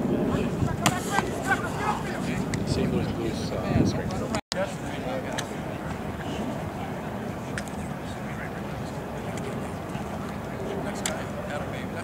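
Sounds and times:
scattered voices: 0.0 - 12.0.

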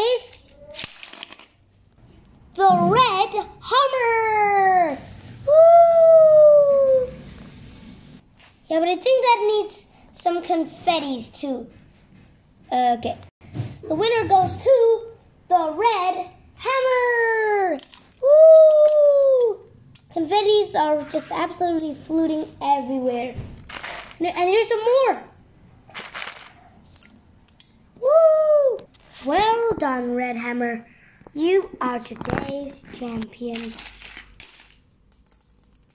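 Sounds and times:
child speaking: 0.0 - 0.8, 2.6 - 7.2, 8.7 - 11.8, 12.7 - 23.4, 24.2 - 25.3, 28.0 - 33.9
person speaking: 28.0 - 34.0.

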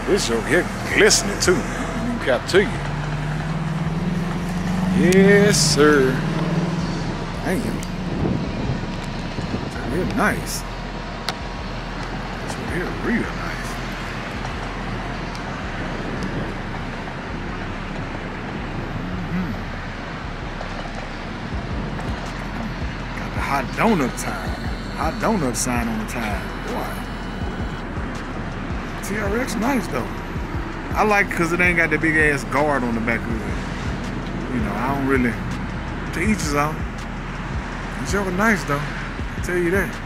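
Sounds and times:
road traffic: 0.0 - 40.0
vehicle engine running: 0.0 - 40.0
wind on microphone: 1.4 - 13.0, 13.8 - 31.0.

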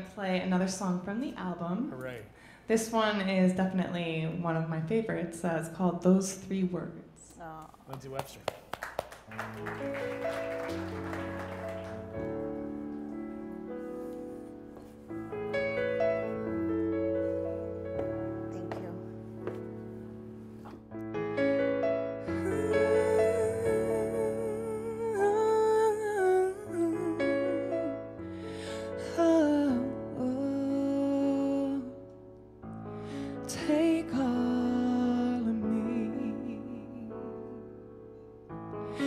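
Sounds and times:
applause: 7.9 - 12.6
keyboard playing soft chords: 9.3 - 39.0
woman singing a slow ballad: 22.2 - 32.2, 33.3 - 37.7.

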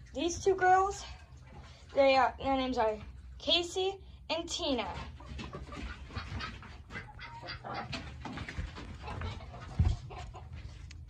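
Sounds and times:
chickens clucking: 5.0 - 11.0.

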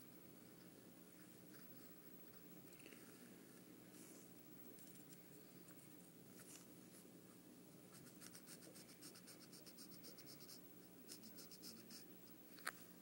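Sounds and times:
pencil scratching on paper: 7.9 - 12.1.

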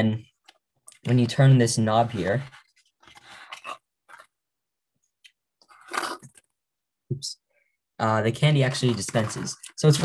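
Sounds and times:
candies rattling and scraping: 3.0 - 4.3, 5.7 - 6.4, 8.5 - 10.0.

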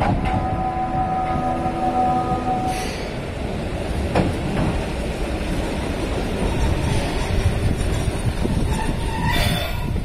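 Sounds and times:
train wheels rumbling on rails: 0.0 - 10.0.

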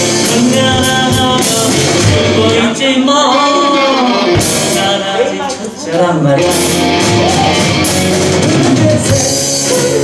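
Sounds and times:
drum kit: 0.0 - 5.6, 6.2 - 10.0
guitars: 0.0 - 10.0.

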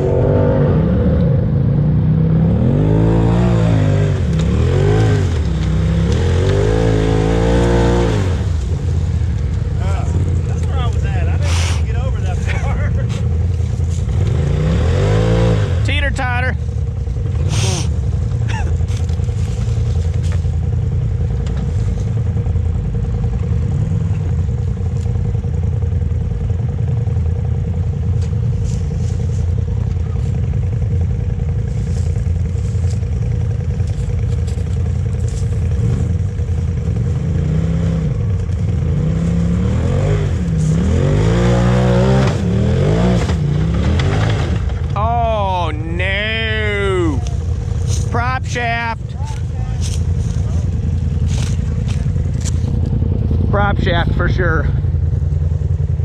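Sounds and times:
off-road vehicle engine revving: 0.0 - 56.0.

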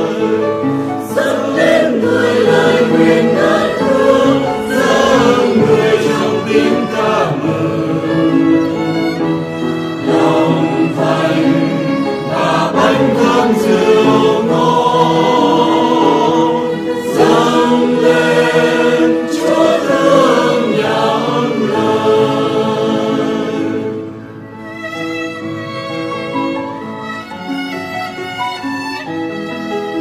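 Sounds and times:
choir singing a hymn: 0.0 - 27.3.

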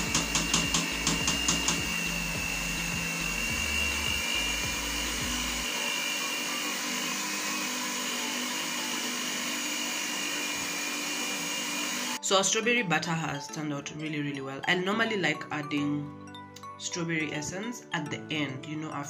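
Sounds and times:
stand mixer motor whirring: 0.0 - 12.2.

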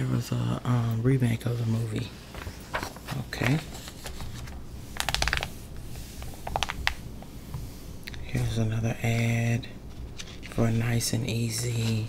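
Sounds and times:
magazine pages crackling: 1.6 - 7.3, 8.4 - 12.0.

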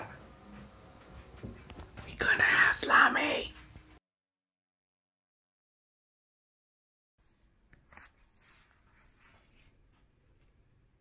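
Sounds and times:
breathy whisper: 2.1 - 3.4.

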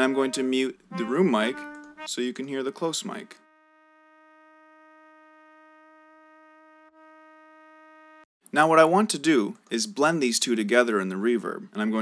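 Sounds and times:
trumpet holding a steady note: 0.0 - 8.3.

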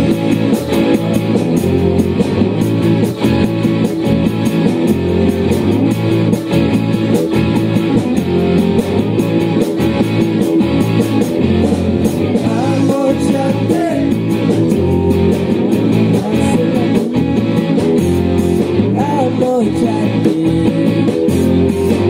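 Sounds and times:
bass guitar: 0.0 - 22.0
electric guitar: 0.0 - 22.0
fast drum beat: 0.0 - 22.0.

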